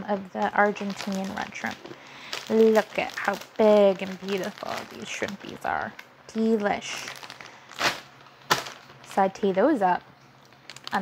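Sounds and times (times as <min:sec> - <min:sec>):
plastic packaging rustling: 0:00.1 - 0:11.0.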